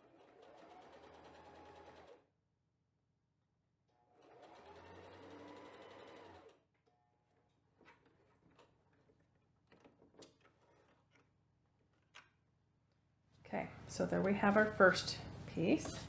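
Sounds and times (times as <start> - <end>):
sewing machine stitching: 0.0 - 2.2, 3.9 - 6.6.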